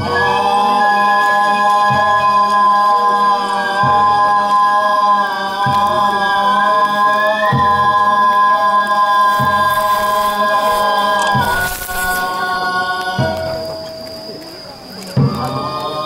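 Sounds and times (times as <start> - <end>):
long held wind or vocal tones: 6.4 - 13.6.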